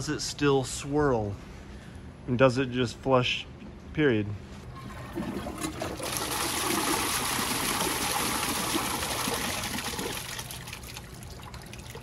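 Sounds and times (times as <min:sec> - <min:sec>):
toilet flushing water rushing: 0:04.8 - 0:12.0.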